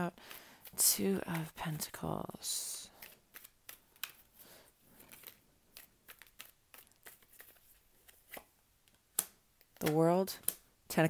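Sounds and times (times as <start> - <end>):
cards being shuffled: 0.0 - 10.7.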